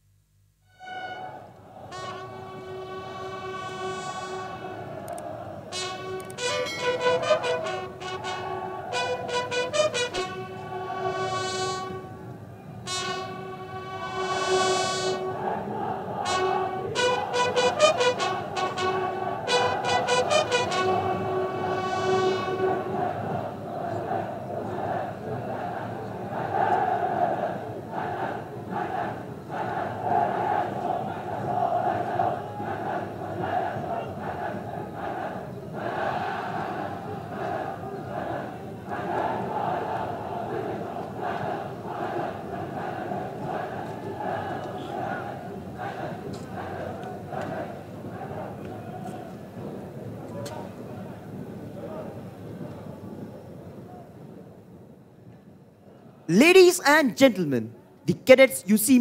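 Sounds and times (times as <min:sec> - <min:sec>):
military bugles playing: 0:00.7 - 0:23.4
background murmur: 0:01.3 - 0:56.4.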